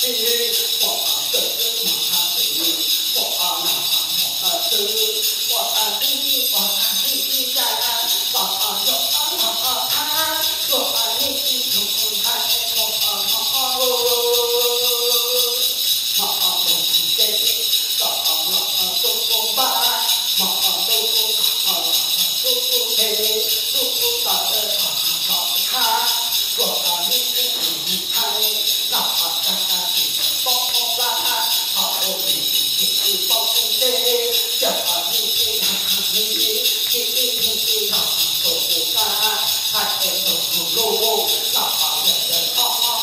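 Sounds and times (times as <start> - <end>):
metal rattle and bells jingling: 0.0 - 43.0
person chanting: 0.0 - 43.0.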